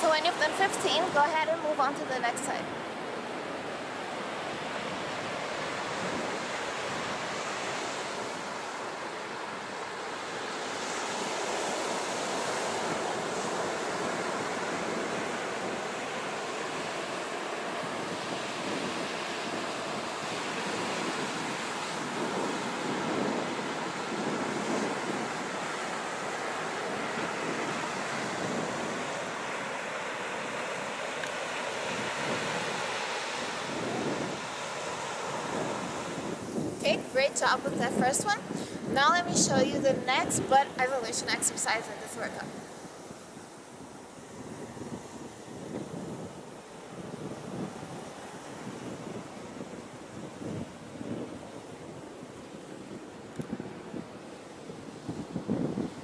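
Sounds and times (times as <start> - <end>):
ocean surf breaking on beach: 0.0 - 56.0.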